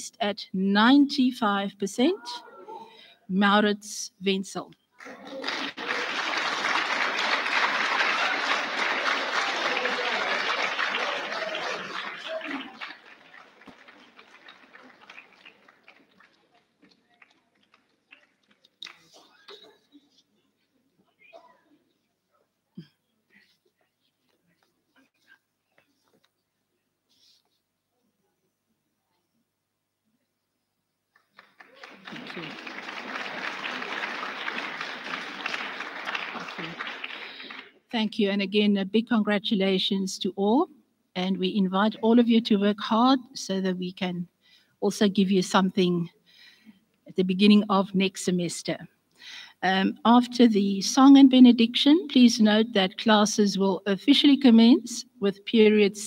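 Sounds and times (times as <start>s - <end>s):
audience applauding: 5.0s - 19.1s, 31.2s - 37.8s
voices over applause: 5.0s - 19.2s, 31.3s - 37.8s.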